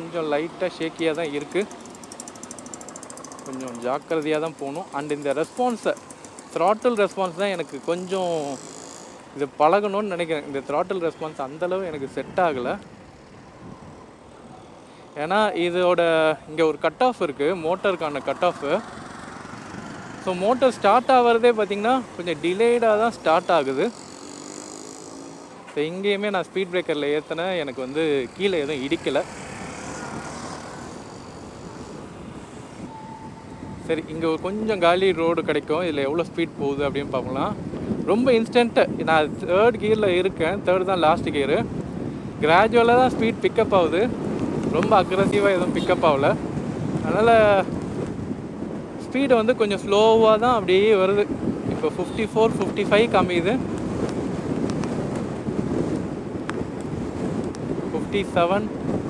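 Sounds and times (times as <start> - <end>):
road and wind noise: 0.0 - 59.0.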